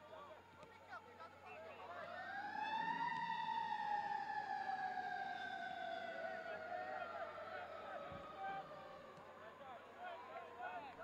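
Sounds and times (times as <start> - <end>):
siren wailing: 2.0 - 9.1.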